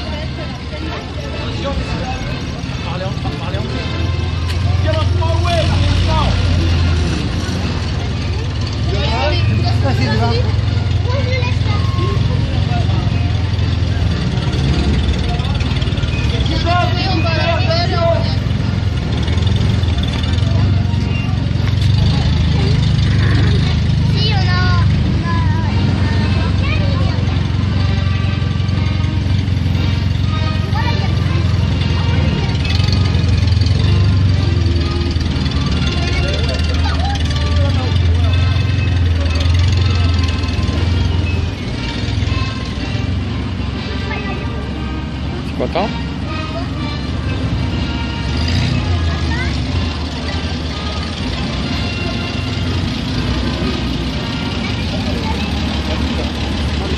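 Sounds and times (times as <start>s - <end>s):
people talking: 0.0s - 56.9s
vehicle engines droning: 0.0s - 56.9s.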